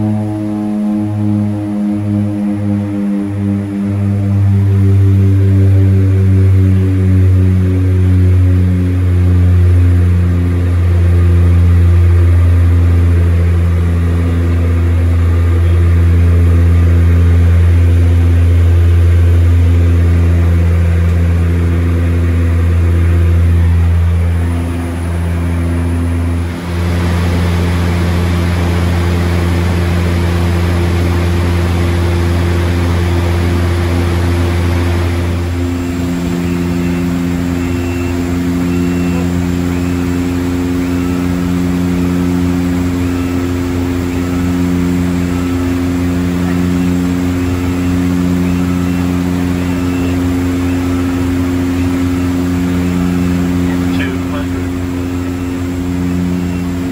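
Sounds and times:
propeller plane cabin drone: 0.0 - 56.9.

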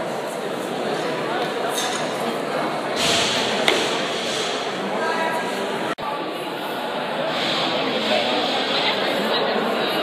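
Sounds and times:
onlookers chatting: 0.0 - 10.0.

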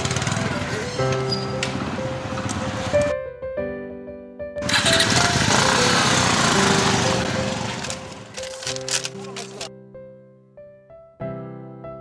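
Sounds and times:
motorcycle engine pulling away: 0.0 - 3.1, 4.6 - 8.4.

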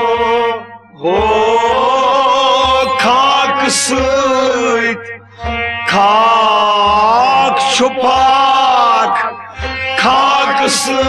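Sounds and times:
instrumental accompaniment: 0.0 - 11.0
man singing long held notes: 0.0 - 11.0.

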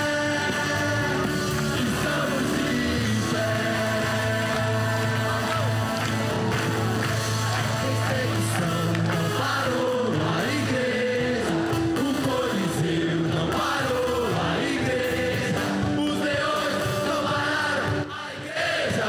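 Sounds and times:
instrumental accompaniment with bass: 0.0 - 18.2
youth choir singing gospel: 0.0 - 19.0.

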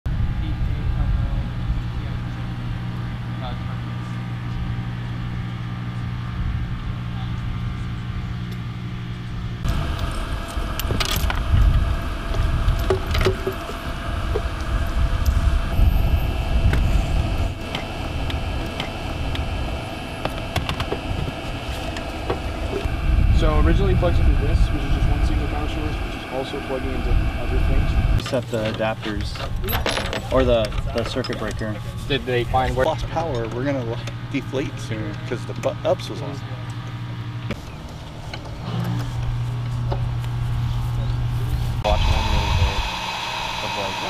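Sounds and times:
low machine hum: 0.1 - 44.0
outdoor rumble: 0.1 - 44.0.

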